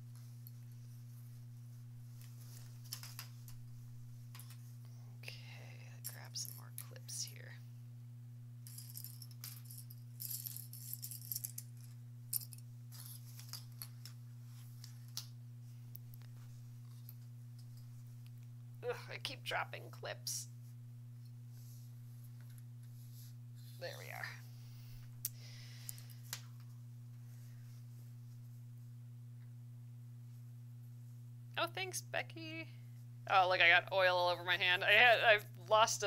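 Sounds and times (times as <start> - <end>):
fabric rustling: 0.0 - 4.3
low electrical hum: 0.0 - 36.0.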